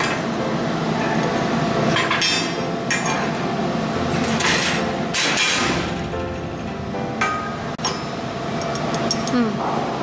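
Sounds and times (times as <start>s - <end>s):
steady background tones: 0.0s - 9.3s.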